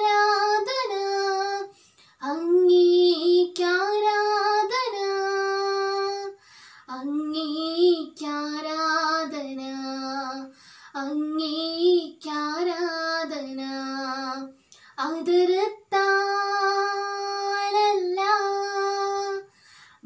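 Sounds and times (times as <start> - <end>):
girl singing unaccompanied: 0.0 - 20.0.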